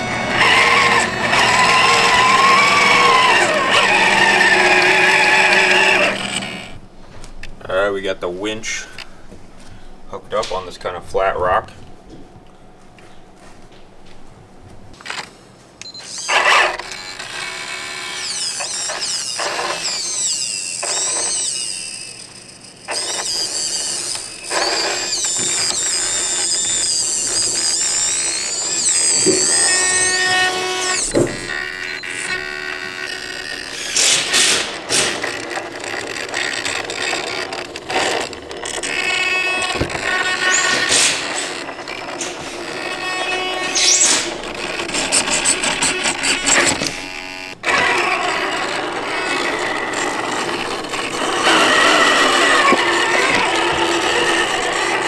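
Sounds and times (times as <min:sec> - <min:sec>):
small electric motors whining: 0:00.0 - 0:06.8, 0:15.0 - 0:55.0.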